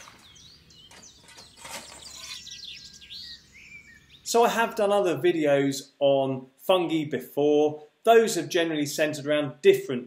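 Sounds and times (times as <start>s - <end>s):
birds chirping: 0.0s - 5.1s.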